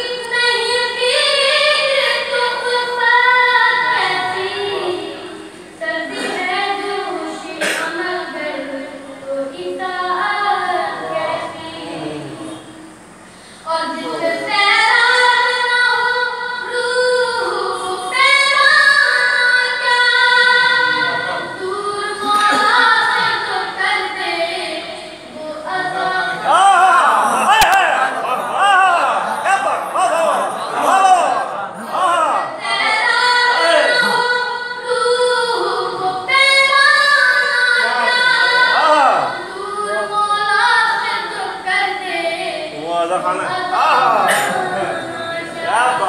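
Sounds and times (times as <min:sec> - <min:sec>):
boy singing unaccompanied: 0:00.0 - 0:12.9, 0:13.6 - 0:28.6, 0:31.8 - 0:46.0.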